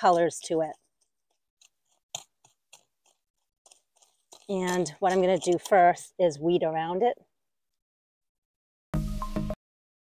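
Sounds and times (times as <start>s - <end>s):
hand cultivator scraping soil: 0.0s - 6.2s.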